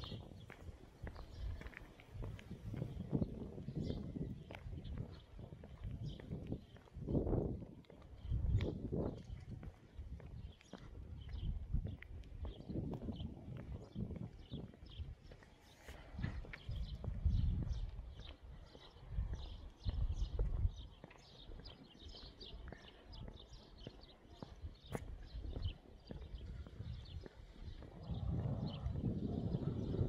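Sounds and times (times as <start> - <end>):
wind rumbling on microphone: 0.0 - 30.0.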